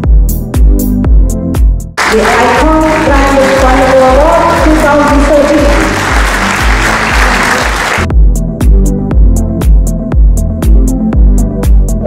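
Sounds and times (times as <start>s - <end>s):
background music with bass beat: 0.0s - 2.0s, 5.8s - 12.0s
audience applause: 2.0s - 8.1s.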